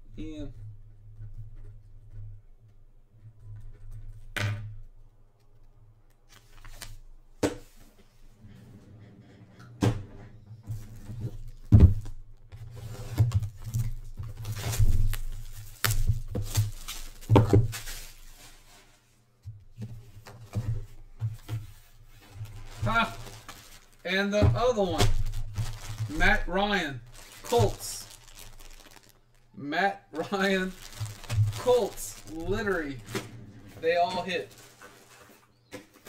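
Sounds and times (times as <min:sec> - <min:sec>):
scraping and rustling: 0:19.8 - 0:24.1, 0:24.8 - 0:29.6, 0:30.4 - 0:36.0
boxes knocking and bumping: 0:24.4 - 0:26.1.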